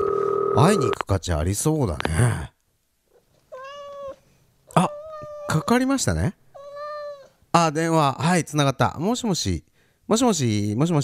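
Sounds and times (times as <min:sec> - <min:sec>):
cat-like meow: 0:03.5 - 0:05.7, 0:06.6 - 0:07.3.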